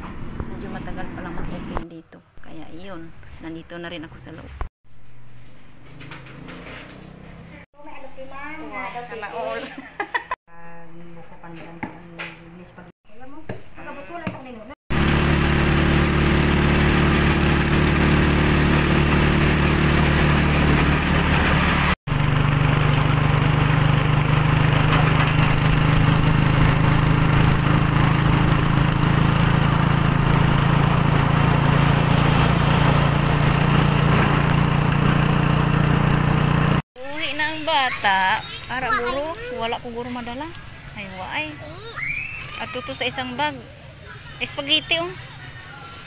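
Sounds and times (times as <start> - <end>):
motorcycle engine running: 14.9 - 40.6.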